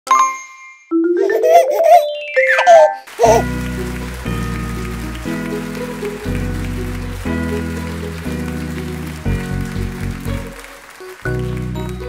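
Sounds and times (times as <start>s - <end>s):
rising cartoonish musical notes: 1.0s - 9.6s.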